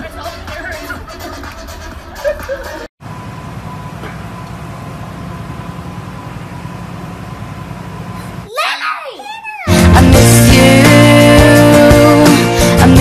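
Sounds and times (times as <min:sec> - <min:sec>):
child squealing: 0:08.5 - 0:09.8.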